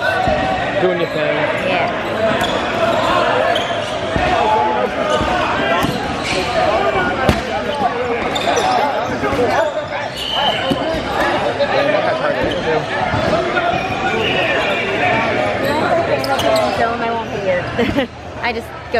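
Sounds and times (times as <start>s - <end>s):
players shouting and chatting: 0.0s - 18.9s.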